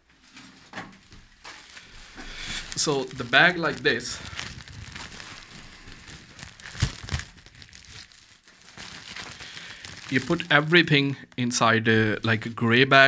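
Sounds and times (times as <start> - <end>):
plastic sack crinkling and rustling: 0.3 - 11.0
plastic crackles: 1.0 - 11.6.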